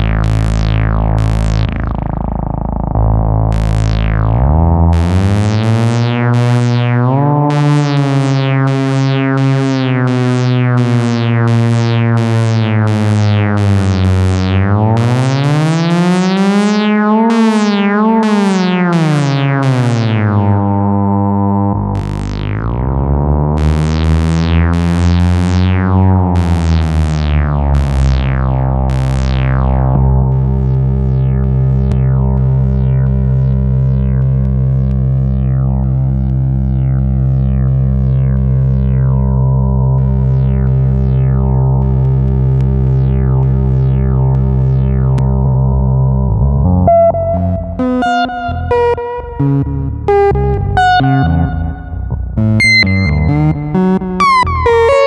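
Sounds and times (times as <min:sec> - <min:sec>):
buzzy synthesizer tone: 0:00.0 - 0:55.0
short falling synth chirps: 0:46.8 - 0:55.0.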